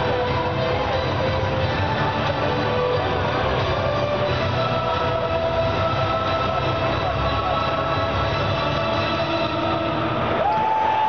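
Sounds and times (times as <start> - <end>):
arena music with horn-like chords: 0.0 - 11.0.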